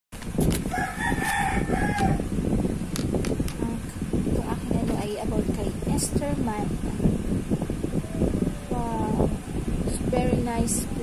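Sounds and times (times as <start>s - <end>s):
steady background noise: 0.2s - 11.0s
rooster crowing: 0.6s - 2.4s.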